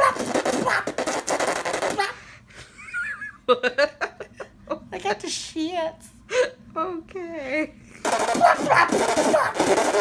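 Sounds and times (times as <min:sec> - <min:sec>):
person blowing a raspberry: 0:00.0 - 0:02.3, 0:08.0 - 0:10.0.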